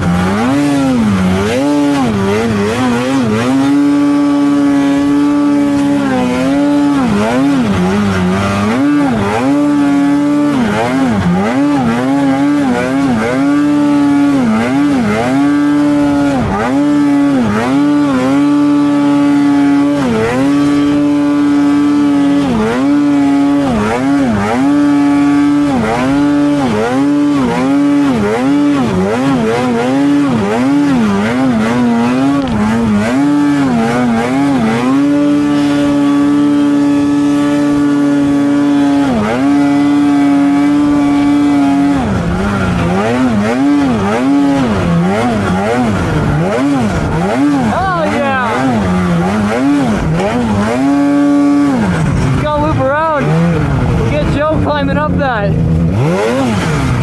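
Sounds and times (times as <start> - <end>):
snowmobile engine working hard: 0.0 - 57.0.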